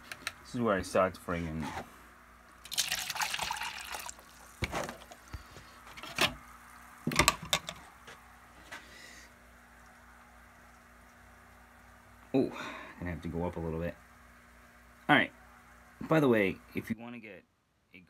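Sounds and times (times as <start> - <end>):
water pouring into plastic cup: 2.6 - 5.3.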